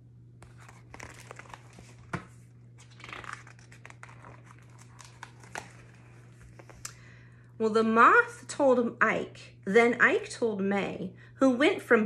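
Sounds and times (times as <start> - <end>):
steady low hum: 0.0 - 12.0
book pages turning: 0.4 - 6.9.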